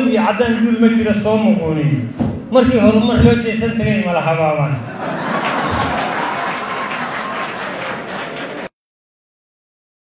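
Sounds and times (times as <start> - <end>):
audience applauding: 5.0 - 8.7.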